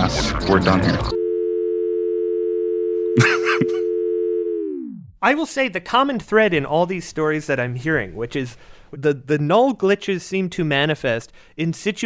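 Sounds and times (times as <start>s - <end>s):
telephone dial tone: 1.2s - 4.7s
person laughing: 3.2s - 3.9s.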